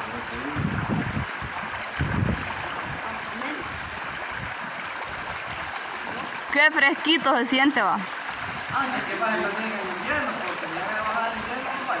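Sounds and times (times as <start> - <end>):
river water flowing: 0.0 - 12.0
people talking indistinctly: 6.5 - 12.0.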